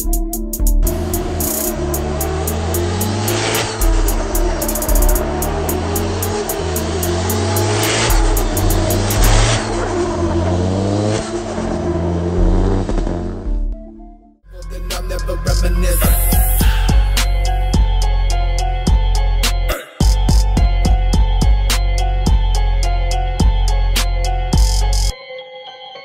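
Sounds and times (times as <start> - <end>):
background music: 0.0 - 26.0
car engine revving: 0.8 - 13.8, 14.6 - 18.0
tyre screech: 0.9 - 11.4, 14.6 - 17.7.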